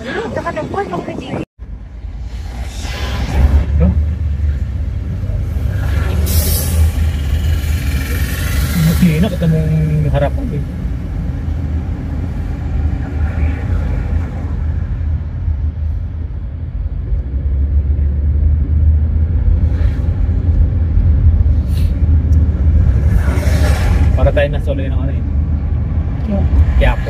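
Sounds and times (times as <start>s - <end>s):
car engine and road noise: 0.0s - 27.0s.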